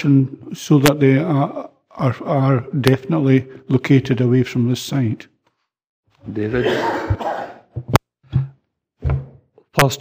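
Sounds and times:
man coughing: 0:06.5 - 0:07.7
man clearing throat: 0:06.5 - 0:07.8.

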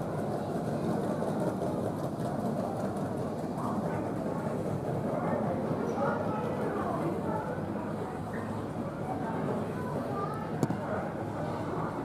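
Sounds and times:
muffled jet airliners taxiing: 0:00.0 - 0:12.0.

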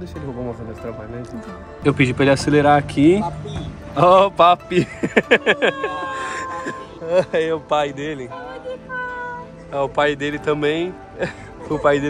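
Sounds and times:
short falling cries: 0:05.4 - 0:07.0
long held high vocal note: 0:05.4 - 0:07.1.

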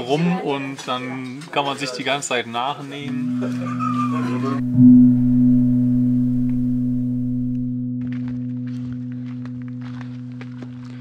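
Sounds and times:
singing bowl ringing: 0:02.9 - 0:11.0.

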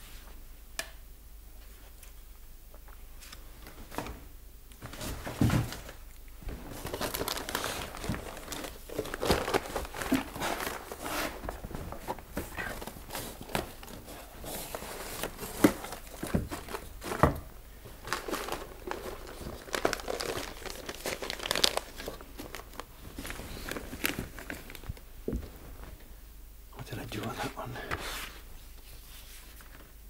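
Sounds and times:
paper rustling and crinkling: 0:04.8 - 0:25.1, 0:27.8 - 0:30.0.

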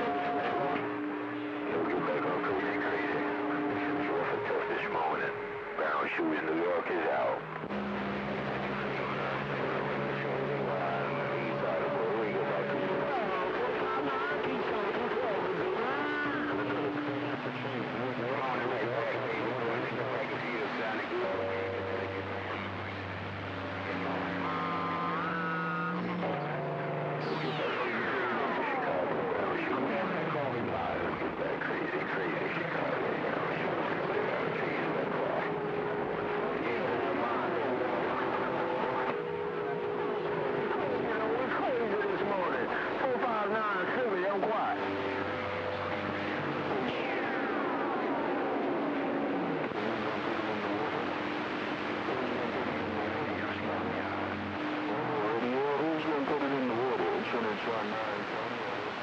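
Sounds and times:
garbled radio transmissions: 0:00.0 - 0:59.0
radio static: 0:00.0 - 0:59.0.

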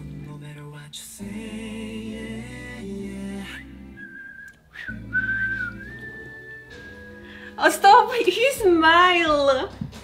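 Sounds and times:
whistled melody: 0:03.4 - 0:07.8
soft backing music: 0:04.8 - 0:10.0.

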